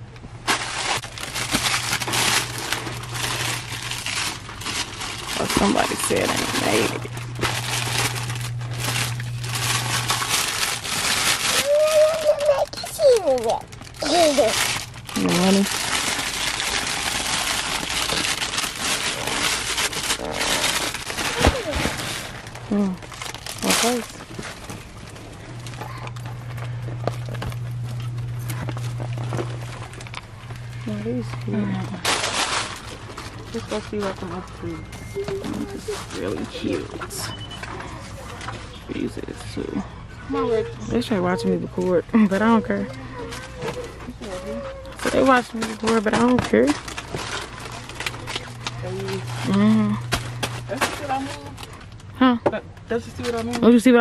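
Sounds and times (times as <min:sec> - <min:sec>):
steady low hum: 0:00.0 - 0:54.0
plastic bag crinkling: 0:00.4 - 0:39.6, 0:41.7 - 0:52.1.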